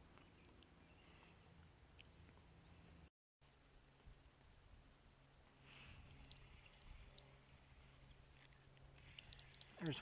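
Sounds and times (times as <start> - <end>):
faint small clicks: 0.0 - 3.1, 5.4 - 10.0
low steady hum: 0.0 - 10.0.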